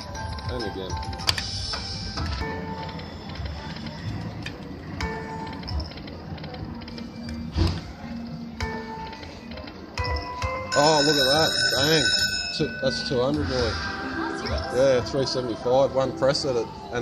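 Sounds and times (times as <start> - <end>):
gaming room chatter: 0.2 - 17.0
slot machine electronic jingles: 9.9 - 13.9.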